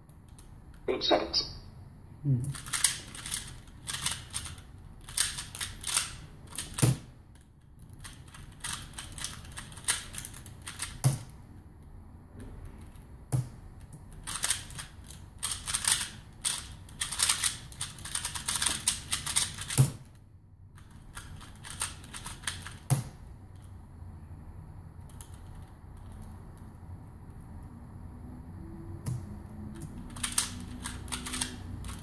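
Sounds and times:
puzzle cube plastic clicking: 29.8 - 32.0.

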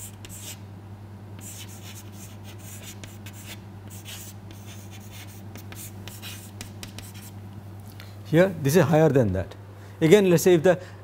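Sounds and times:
chalk scratching on chalkboard: 0.0 - 0.6, 1.4 - 7.4
steady low hum: 0.0 - 11.0.

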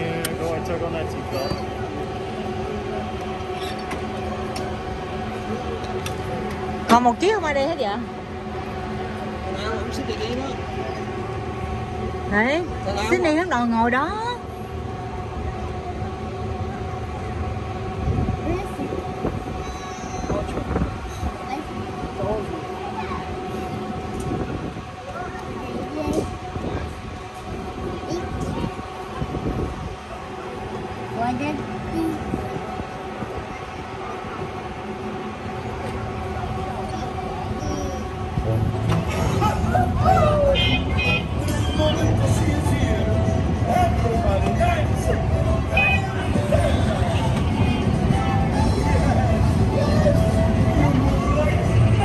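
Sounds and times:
ride car electric hum: 0.0 - 52.0
scattered voices: 0.0 - 52.0.

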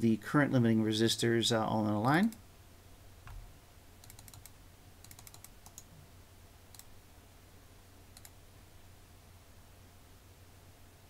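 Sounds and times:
faint low hum: 0.0 - 11.0
computer keyboard and mouse clicks: 4.0 - 5.9, 6.7 - 6.9, 8.1 - 8.4.

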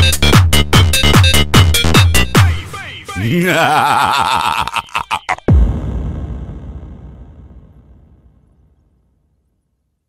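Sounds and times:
deep bass boom: 5.5 - 9.4.

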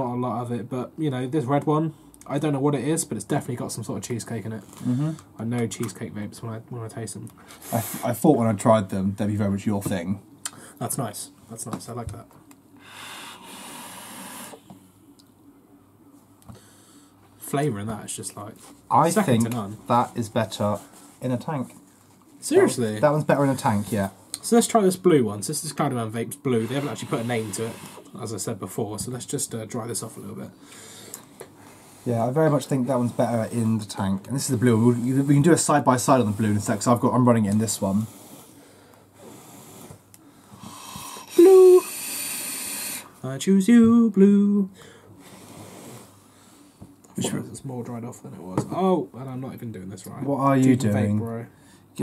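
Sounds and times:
airy hiss of vape inhale: 12.8 - 14.8, 26.6 - 28.1, 38.0 - 43.1, 45.2 - 46.8.

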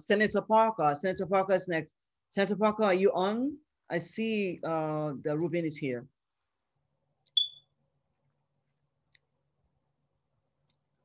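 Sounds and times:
high-pitched electronic beep: 7.4 - 7.6.

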